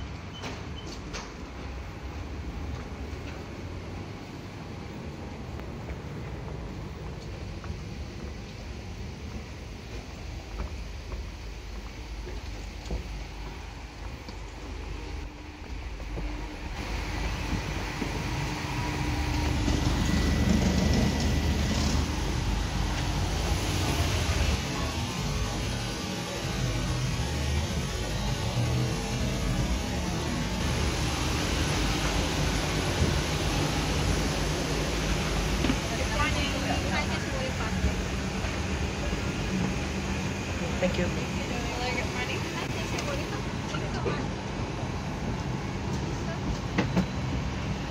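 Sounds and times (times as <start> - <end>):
jet aircraft rushing noise: 14.7 - 43.7.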